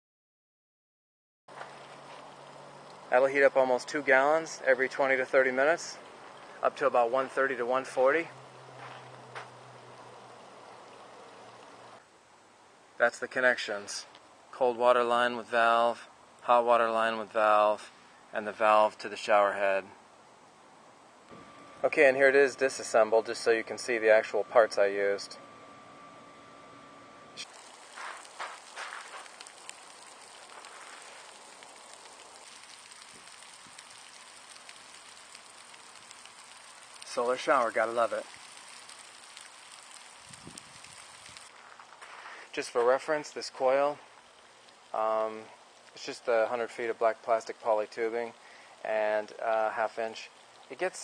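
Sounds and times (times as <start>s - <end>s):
shower water spray hissing: 27.4s - 41.5s.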